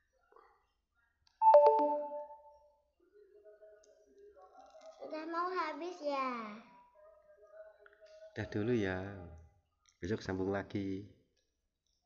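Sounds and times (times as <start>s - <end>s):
falling four-note phone chime: 1.4s - 2.4s.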